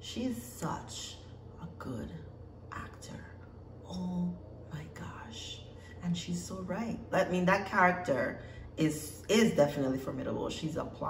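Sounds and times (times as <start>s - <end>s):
woman speaking softly: 0.0s - 11.0s.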